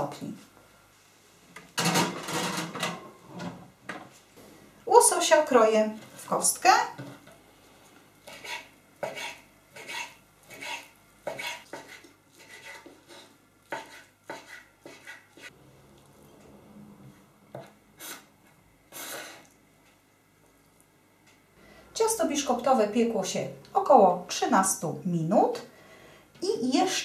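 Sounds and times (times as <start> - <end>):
knife scraping board: 8.3 - 15.5.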